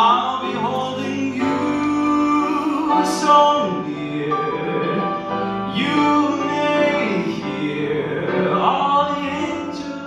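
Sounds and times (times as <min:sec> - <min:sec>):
grand piano: 0:00.0 - 0:10.0
man singing into microphone: 0:00.0 - 0:10.0.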